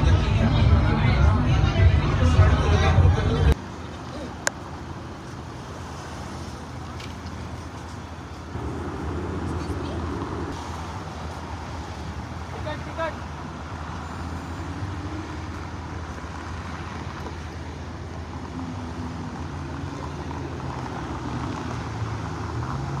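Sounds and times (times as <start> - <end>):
road traffic hum: 0.0 - 23.0.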